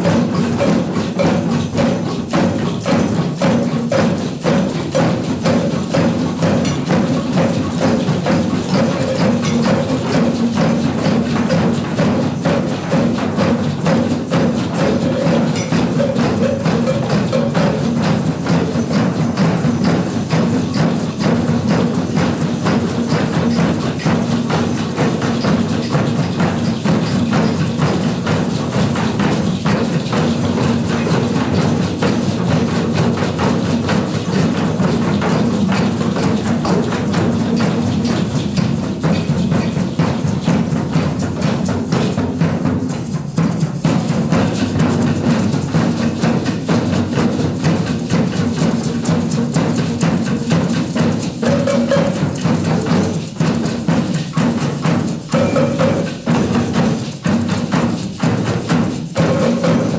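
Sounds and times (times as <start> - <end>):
group of hand drums playing: 0.0 - 59.9
sharp clicky drum hits: 0.0 - 59.9.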